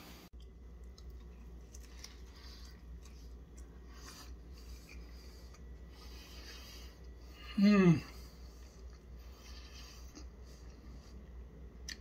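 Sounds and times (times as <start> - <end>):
low steady hum: 0.0 - 12.0
chewing crunchy food: 0.4 - 7.4, 8.1 - 12.0.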